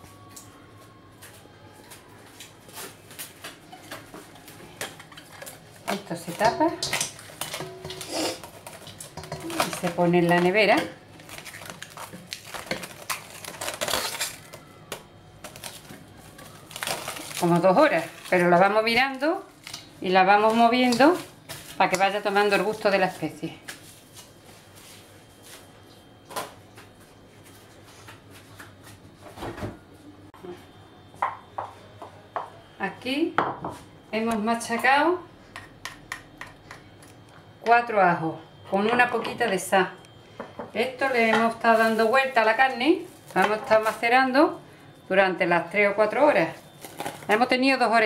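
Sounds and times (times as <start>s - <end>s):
cling film crinkling: 7.0s - 18.6s.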